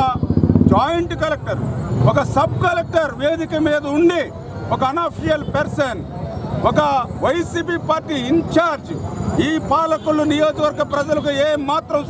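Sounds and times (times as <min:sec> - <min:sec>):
man speaking: 0:00.0 - 0:12.0
pulsing engine rumble: 0:00.0 - 0:12.0.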